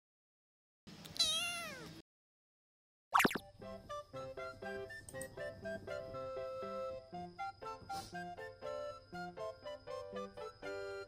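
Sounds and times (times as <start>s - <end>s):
cat meow: 1.1s - 2.0s.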